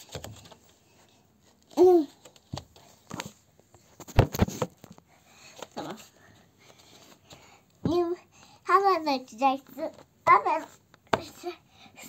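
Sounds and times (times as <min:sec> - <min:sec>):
faint handling knocks and rustles: 0:00.0 - 0:08.2.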